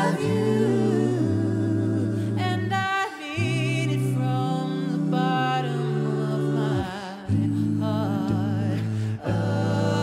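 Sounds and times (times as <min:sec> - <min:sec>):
a cappella group singing: 0:00.0 - 0:10.0.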